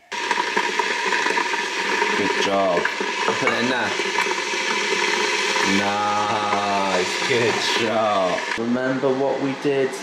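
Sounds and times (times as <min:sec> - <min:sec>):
electric kettle boiling: 0:00.0 - 0:10.0
man talking: 0:02.2 - 0:04.0, 0:05.6 - 0:10.0.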